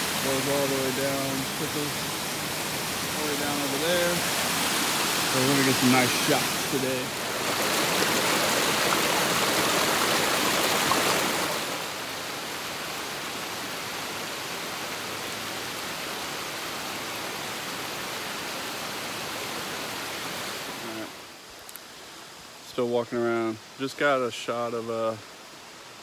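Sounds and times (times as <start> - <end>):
creek and waterfall rushing: 0.0 - 26.0.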